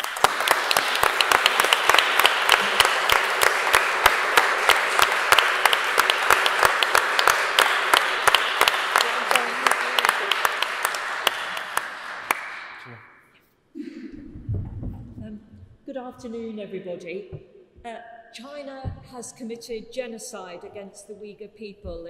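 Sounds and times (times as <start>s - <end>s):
people applauding: 0.0s - 13.0s.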